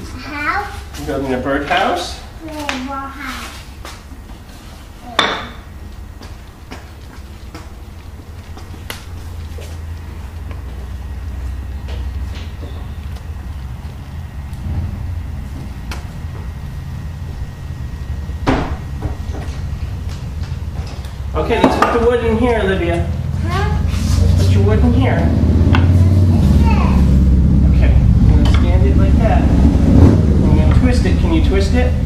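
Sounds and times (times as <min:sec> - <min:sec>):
low steady rumble: 0:00.0 - 0:32.0.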